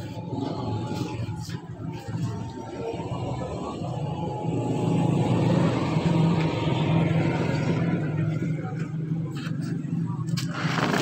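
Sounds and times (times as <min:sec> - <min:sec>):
motor vehicle engine rumbling: 0:00.0 - 0:11.0.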